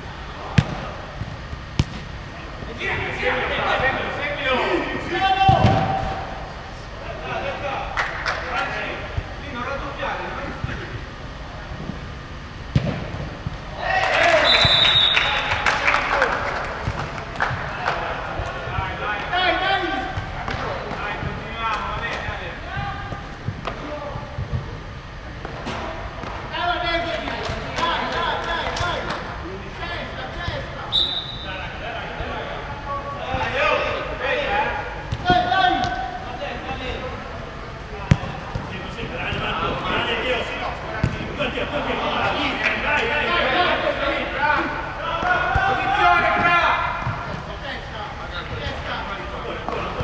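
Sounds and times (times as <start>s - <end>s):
ball kicks and bounces echoing: 0.5s - 2.2s, 5.5s - 6.2s, 12.7s - 13.6s, 38.0s - 39.6s, 41.0s - 41.4s
players shouting: 13.7s - 16.7s, 38.0s - 47.6s
referee's whistle blasts: 14.3s - 15.6s, 30.9s - 31.6s.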